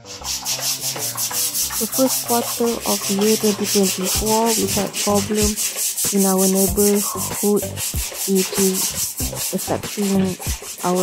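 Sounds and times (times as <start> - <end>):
rapid rasping rubbing noise: 0.0 - 11.0.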